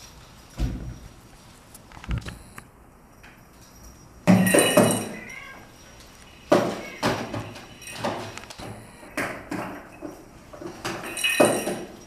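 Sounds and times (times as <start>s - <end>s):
cat meowing faintly: 5.1s - 5.8s, 6.6s - 7.3s.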